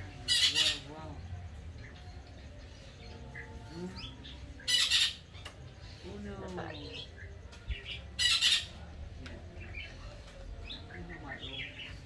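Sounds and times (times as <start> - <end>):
parrot squawking: 0.3 - 0.9, 4.6 - 5.2, 8.2 - 8.8.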